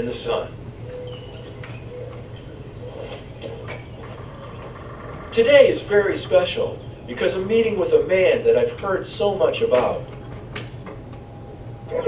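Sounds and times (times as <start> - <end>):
steady low hum: 0.0 - 12.0
faint bird chirps: 0.8 - 7.4.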